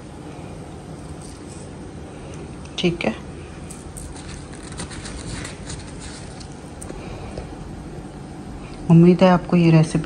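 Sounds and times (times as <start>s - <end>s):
steady background noise: 0.0s - 10.0s
faint handling clicks and rustles: 0.3s - 2.8s, 3.4s - 7.6s.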